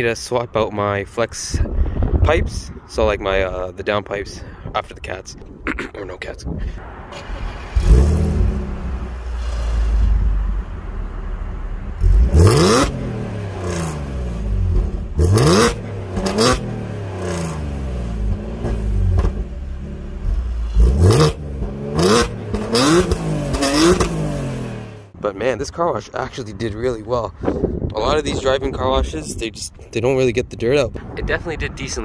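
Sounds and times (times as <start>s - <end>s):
car engine idling: 6.8s - 25.2s
car engine revving: 6.8s - 25.2s.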